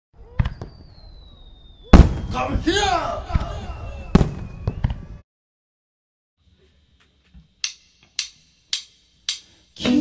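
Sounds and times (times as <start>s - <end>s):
falling firework whistle: 0.2s - 5.2s
firework pops: 0.3s - 1.0s, 1.9s - 2.4s, 3.3s - 5.0s
loud firework bang: 1.9s - 5.1s.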